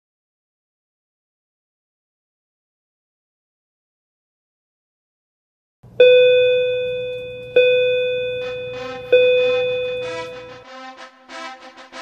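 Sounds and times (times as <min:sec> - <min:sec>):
bell-like chime: 0:06.6 - 0:10.7
faint music: 0:08.4 - 0:11.4.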